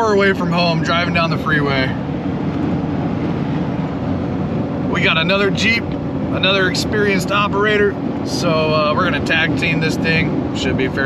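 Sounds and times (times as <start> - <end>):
engine drone: 0.0 - 11.0
road and tyre noise: 0.0 - 11.0.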